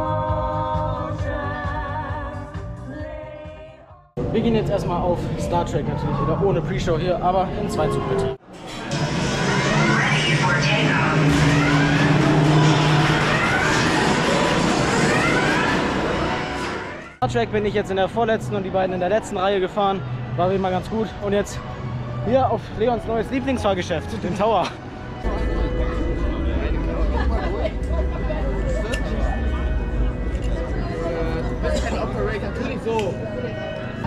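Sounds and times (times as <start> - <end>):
several voices singing over a beat: 0.0 - 4.0
background music: 0.0 - 34.0
roller coaster train whine: 8.7 - 17.2.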